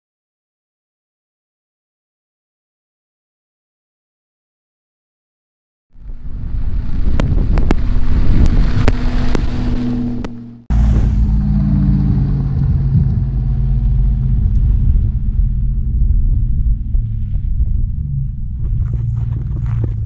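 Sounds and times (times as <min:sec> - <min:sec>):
suv engine driving: 0:06.0 - 0:20.0
stones clicking under tyres: 0:15.7 - 0:20.0.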